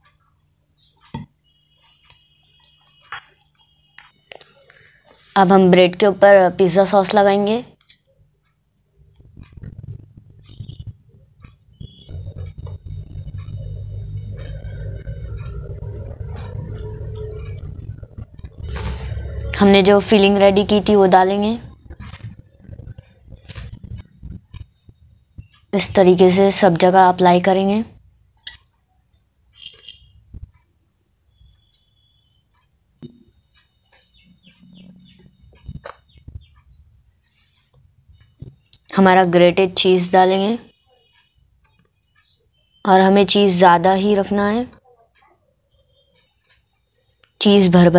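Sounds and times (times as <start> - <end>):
steady low rumble: 9.0 - 26.2
thin high tone: 11.8 - 22.1.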